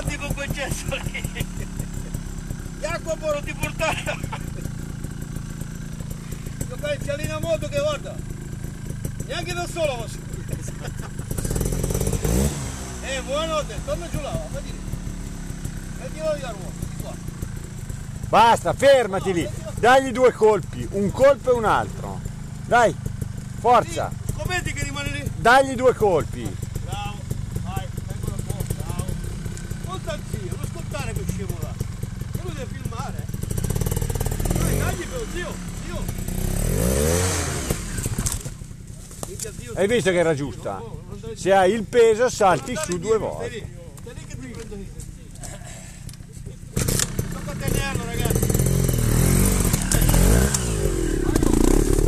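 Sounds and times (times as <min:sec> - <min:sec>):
motorcycle engine revving: 0:00.0 - 0:52.0.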